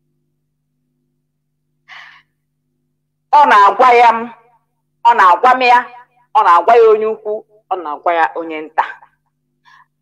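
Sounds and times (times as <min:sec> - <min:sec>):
faint steady hum: 0:00.0 - 0:10.0
woman's short breath: 0:01.9 - 0:02.4.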